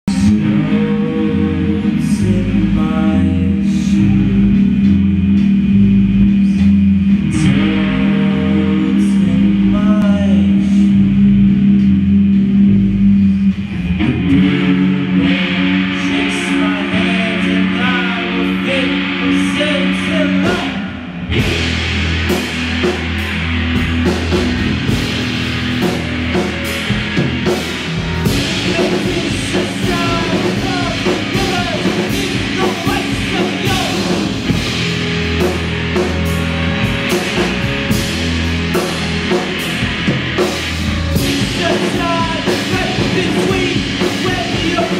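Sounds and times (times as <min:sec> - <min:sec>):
bass guitar: 0:00.0 - 0:44.9
drum kit: 0:00.0 - 0:44.9
electric guitar: 0:00.0 - 0:44.9.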